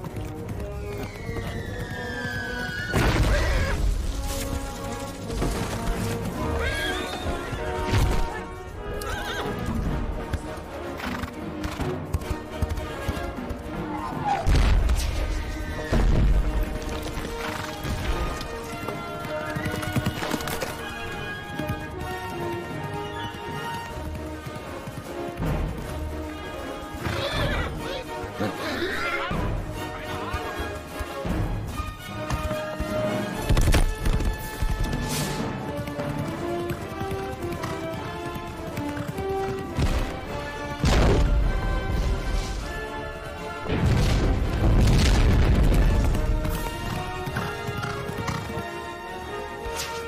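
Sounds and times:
film score music: 0.0s - 50.0s
horse whinnying: 0.9s - 3.8s, 6.4s - 7.9s, 8.9s - 9.7s, 26.9s - 30.7s
horse neighing: 6.5s - 7.7s, 8.9s - 9.7s, 27.0s - 29.4s.

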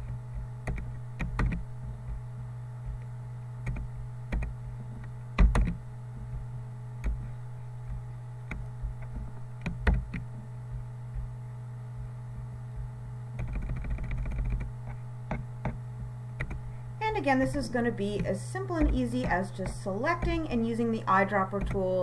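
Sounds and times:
low electrical hum: 0.0s - 22.0s
mouse and keyboard clicks: 13.4s - 14.7s.

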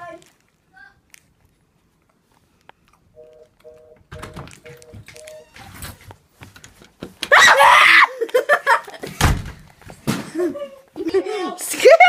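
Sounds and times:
person screaming: 7.3s - 8.2s.

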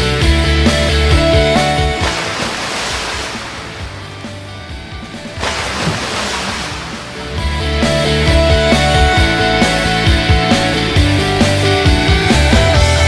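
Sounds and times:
rock music: 0.0s - 13.0s
wash of noise: 1.8s - 9.0s.

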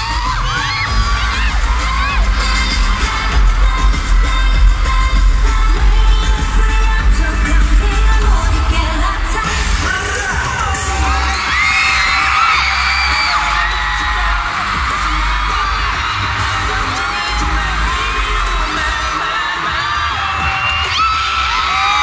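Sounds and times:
crowd screaming and cheering: 0.0s - 22.0s
pop music with singing: 0.0s - 22.0s.

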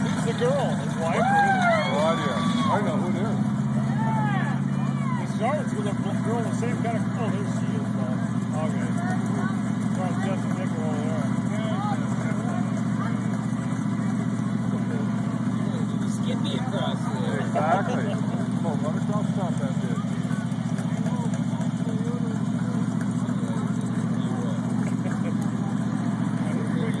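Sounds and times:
crowd voices chattering: 0.0s - 27.0s
engine idling: 0.0s - 27.0s.

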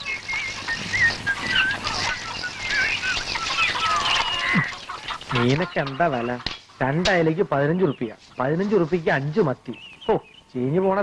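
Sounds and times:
birds chirping: 0.0s - 11.0s
man speaking: 5.3s - 11.0s.

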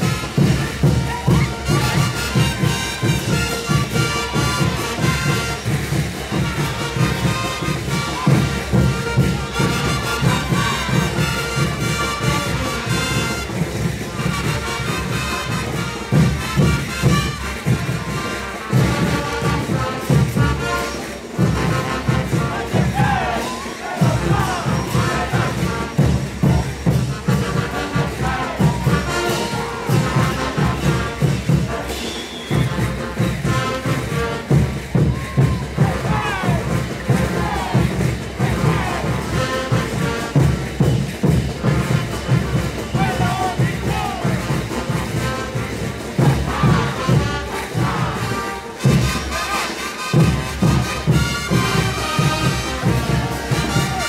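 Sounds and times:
crowd shouting: 0.0s - 40.8s, 41.7s - 54.0s
bass drum beat: 0.0s - 49.1s
brass band playing: 0.0s - 54.0s.

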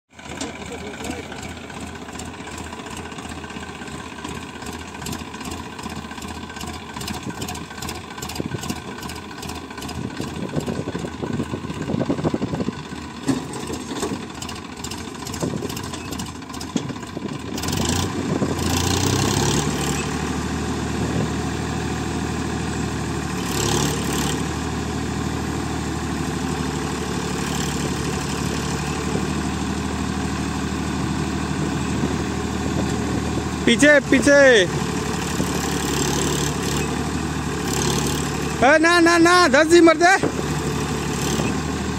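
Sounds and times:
tractor diesel engine revving: 0.1s - 41.9s.

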